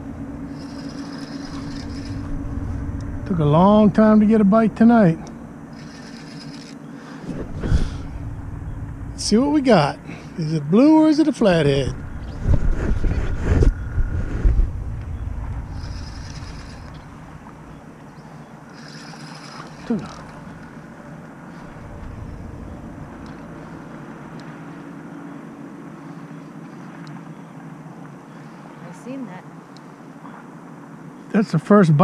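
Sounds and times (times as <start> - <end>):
fishing reel clicking and whirring: 0.5 - 2.4, 5.7 - 6.9, 15.7 - 17.2, 18.2 - 20.9.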